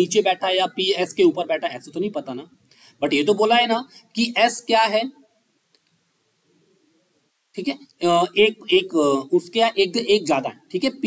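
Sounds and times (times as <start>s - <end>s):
person speaking: 0.0s - 5.3s, 7.5s - 11.0s
faint click: 5.7s - 6.0s.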